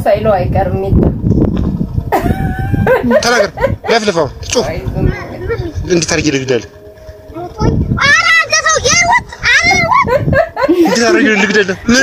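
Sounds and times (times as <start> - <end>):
woman talking: 0.0 - 1.0
woman laughing: 2.1 - 4.0, 9.9 - 11.9.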